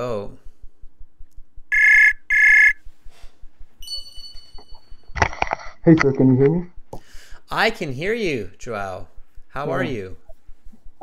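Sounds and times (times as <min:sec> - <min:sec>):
person speaking: 0:07.6 - 0:10.4.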